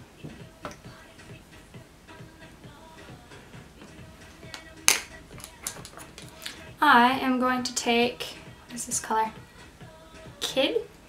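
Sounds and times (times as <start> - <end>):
soft background music: 0.0 - 11.0.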